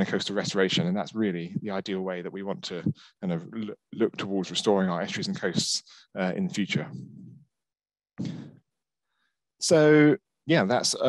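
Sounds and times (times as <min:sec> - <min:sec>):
man speaking: 0:00.0 - 0:07.4, 0:09.6 - 0:11.0
man breathing: 0:08.2 - 0:09.4.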